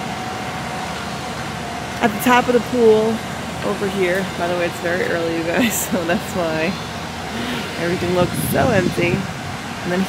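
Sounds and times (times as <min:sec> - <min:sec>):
outdoor background hum: 0:00.0 - 0:10.0.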